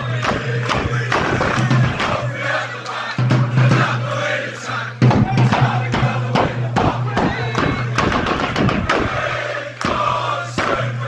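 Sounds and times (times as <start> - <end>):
crowd chanting: 0.0 - 11.0
rhythmic clapping: 0.0 - 11.0.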